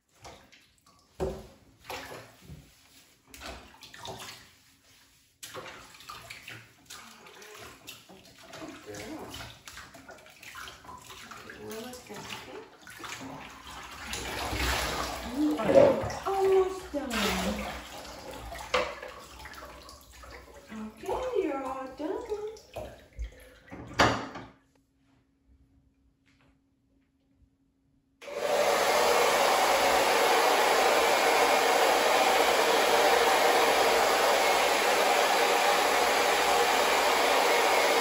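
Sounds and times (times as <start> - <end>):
shower water splashing in bathtub: 0.0 - 24.2, 28.2 - 38.0.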